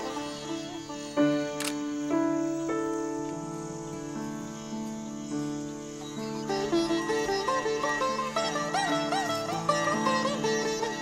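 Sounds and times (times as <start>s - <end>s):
camera shutter click: 1.6s - 1.8s
acoustic ensemble music: 4.5s - 11.0s.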